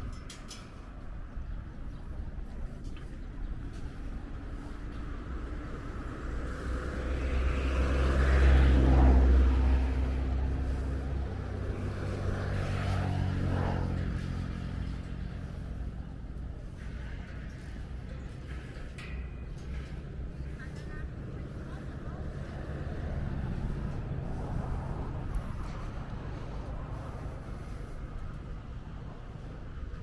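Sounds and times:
vehicles passing: 0.0 - 30.0.

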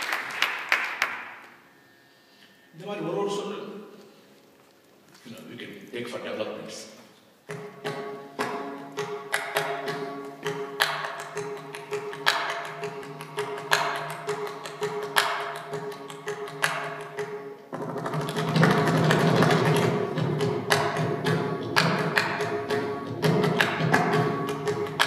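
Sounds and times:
hand drum strokes: 7.5 - 25.0.

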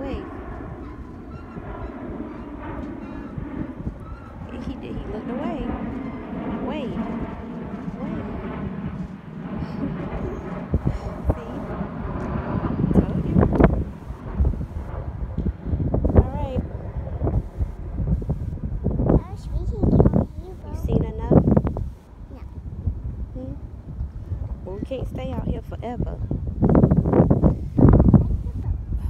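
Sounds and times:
wind rumbling on microphone: 0.0 - 29.0.

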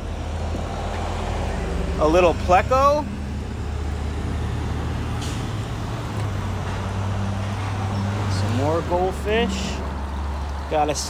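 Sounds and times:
outdoor noise: 0.0 - 11.0.

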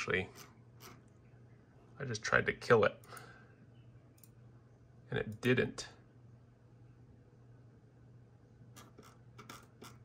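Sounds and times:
low steady hum: 0.0 - 10.0
computer mouse clicks: 4.1 - 4.4.

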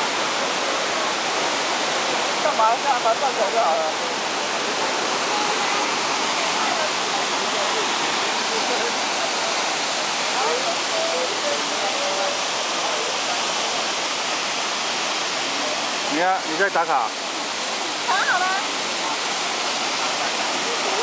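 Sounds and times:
waterfall rushing: 0.0 - 21.0.

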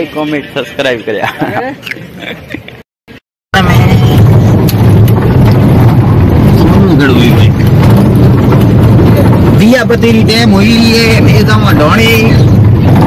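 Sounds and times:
car cabin rumble: 3.6 - 13.0.

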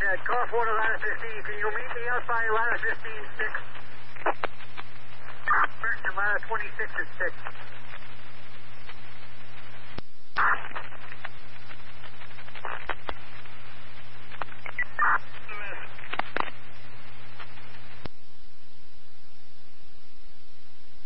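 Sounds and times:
garbled radio voice fragments: 0.0 - 4.4, 5.3 - 7.6, 10.4 - 11.2, 14.5 - 16.4
low hum: 0.0 - 21.0
radio static hiss: 0.0 - 21.0
radio clicks: 0.1 - 18.2.

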